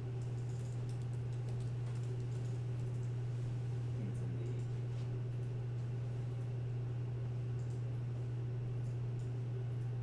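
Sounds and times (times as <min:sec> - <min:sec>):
low electrical hum: 0:00.0 - 0:10.0
keyboard typing: 0:00.2 - 0:03.1.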